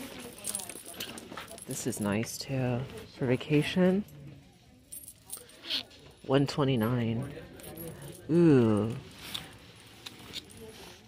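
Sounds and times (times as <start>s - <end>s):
handbag hardware jingling: 0.0s - 11.0s.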